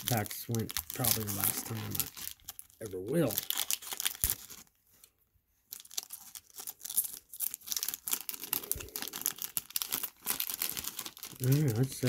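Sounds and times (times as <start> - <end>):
card wrapper crinkling and tearing: 0.0 - 12.0.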